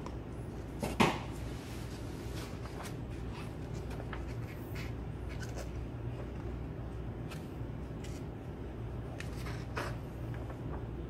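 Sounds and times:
steady low hum: 0.0 - 11.0
paper pages rustling: 1.5 - 6.6, 9.0 - 11.0.

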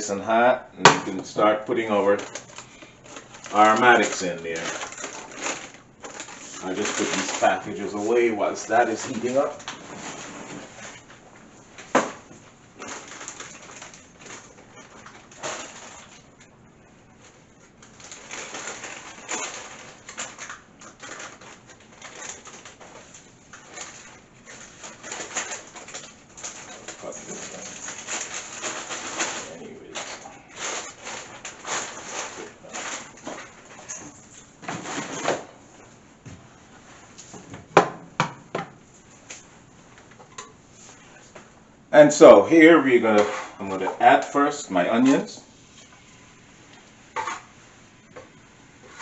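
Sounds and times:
packages rustling and clattering: 1.2 - 37.8.

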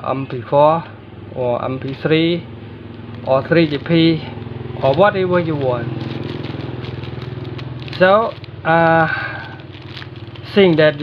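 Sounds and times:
small engine idling: 1.0 - 11.0.

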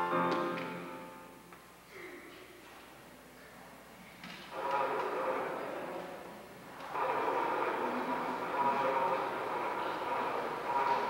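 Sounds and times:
held musical chords: 0.0 - 1.5.

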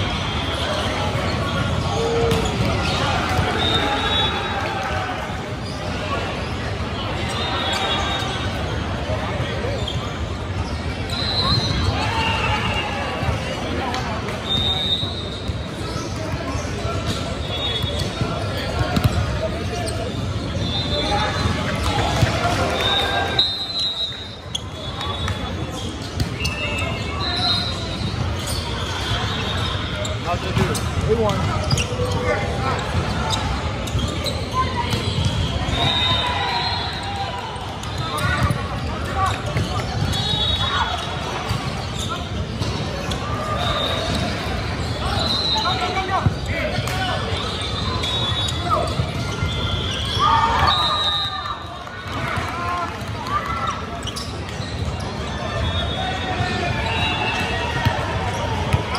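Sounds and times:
people talking in a gym: 0.0 - 58.9
sneakers squeaking: 0.0 - 58.9.

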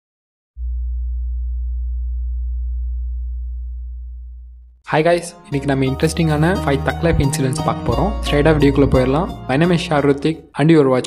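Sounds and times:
deep electronic bass drone: 0.6 - 4.9.

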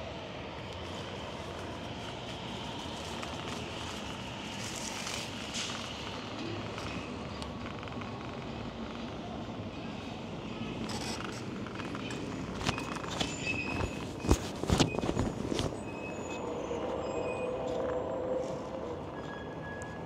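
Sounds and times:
bike rolling and wind noise: 0.0 - 20.0
bike rattling on rough surface: 10.8 - 15.8.

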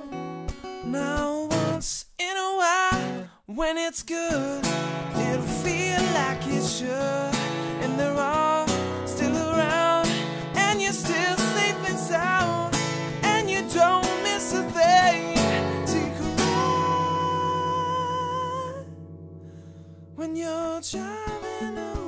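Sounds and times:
fingerpicked acoustic guitar: 0.0 - 22.0
man singing: 0.8 - 19.0, 20.2 - 22.0.

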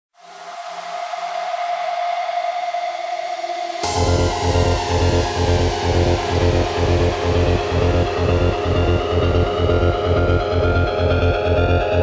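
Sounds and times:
high sustained synth tone: 0.2 - 12.0
dance track with heavy bass: 3.2 - 12.0
pulsing low note: 3.8 - 12.0.

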